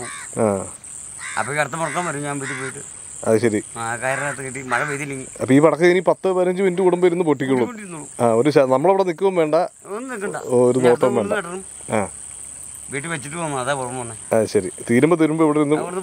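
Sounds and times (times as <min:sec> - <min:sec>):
high-pitched insect drone: 0:00.0 - 0:16.0
man talking: 0:01.4 - 0:12.1, 0:12.9 - 0:16.0.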